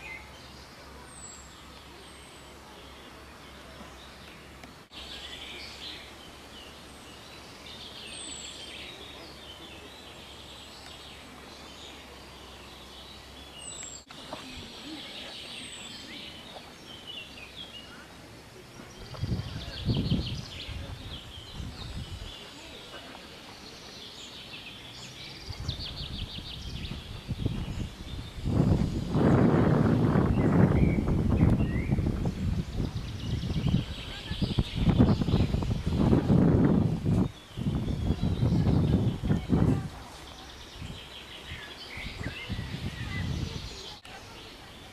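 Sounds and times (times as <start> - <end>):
birds chirping and singing: 0.0 - 44.9
low rumbling noise: 25.2 - 41.1.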